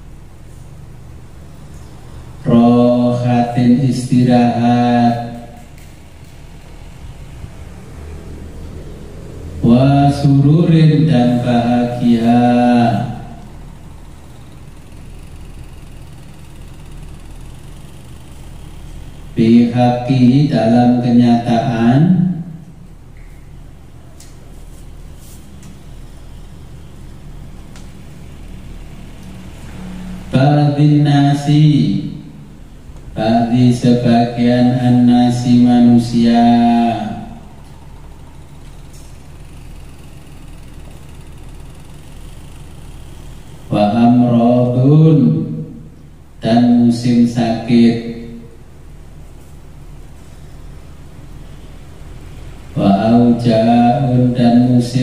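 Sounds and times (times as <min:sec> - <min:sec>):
steady low hum: 0:00.0 - 0:55.0
person speaking: 0:09.6 - 0:13.6.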